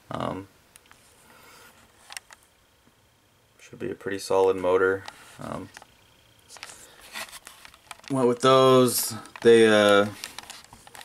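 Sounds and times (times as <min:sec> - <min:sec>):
camera handling clicks and scrapes: 0:10.2 - 0:11.0.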